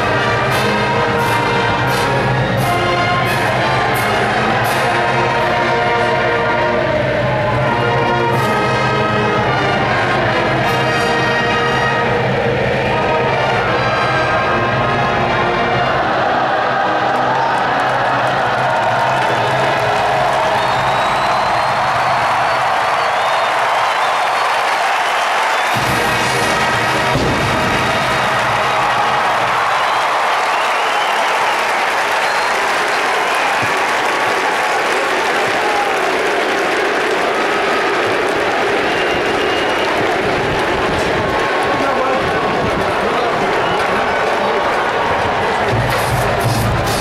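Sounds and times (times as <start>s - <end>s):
marching band brass chord: 0.0s - 16.9s, 25.0s - 31.1s, 45.6s - 47.0s
crowd cheering and applauding: 0.0s - 47.0s.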